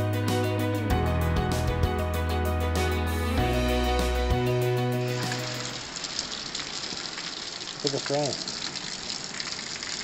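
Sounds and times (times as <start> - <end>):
background music: 0.0 - 5.9
heavy rain pouring: 5.0 - 10.0.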